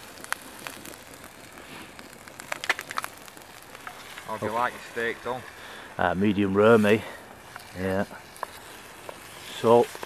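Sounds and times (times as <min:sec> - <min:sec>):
campfire crackling and popping: 0:00.0 - 0:10.0
onions sizzling in a pan: 0:00.0 - 0:10.0.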